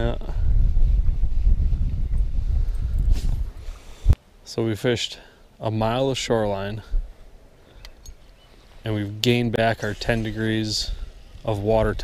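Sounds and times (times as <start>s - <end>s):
wind buffeting microphone: 0.0s - 4.2s, 9.2s - 12.0s.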